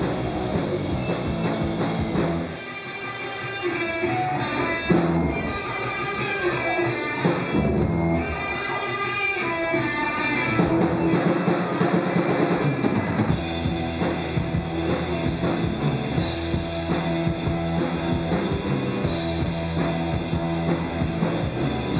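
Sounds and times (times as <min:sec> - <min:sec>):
bass guitar: 0:00.0 - 0:02.6, 0:04.0 - 0:08.8, 0:09.4 - 0:21.9
drum kit: 0:00.0 - 0:21.9
electric guitar: 0:00.0 - 0:21.9.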